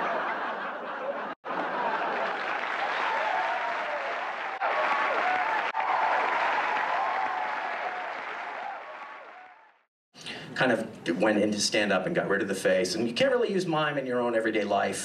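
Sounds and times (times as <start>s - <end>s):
audience applauding: 1.0s - 9.9s.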